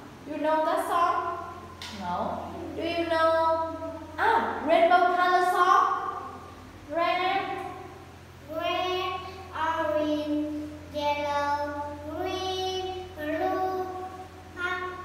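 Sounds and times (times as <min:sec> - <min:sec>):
girl singing unaccompanied: 0:08.4 - 0:15.0.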